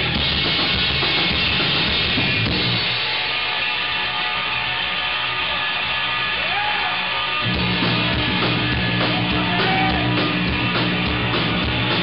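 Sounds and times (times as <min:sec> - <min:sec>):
bass guitar: 0:00.0 - 0:12.0
distorted electric guitars: 0:00.0 - 0:12.0
drum kit: 0:00.0 - 0:12.0.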